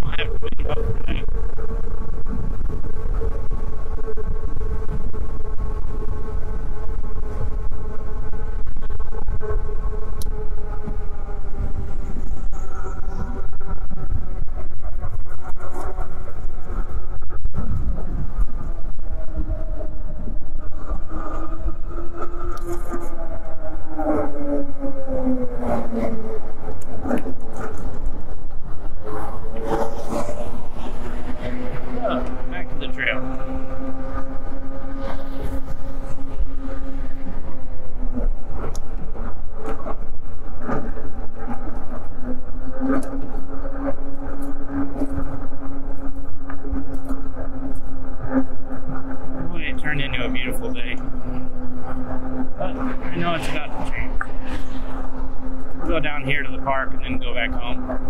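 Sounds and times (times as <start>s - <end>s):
electric motor whining: 0.0s - 58.0s
wind rumble on microphone: 0.0s - 58.0s.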